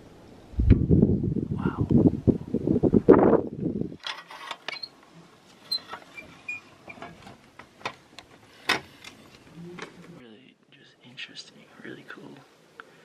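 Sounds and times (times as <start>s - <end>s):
wind buffeting microphone: 0.4s - 4.0s.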